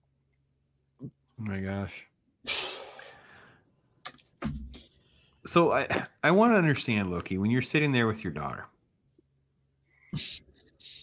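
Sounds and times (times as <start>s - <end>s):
intake of breath: 2.5s - 3.8s.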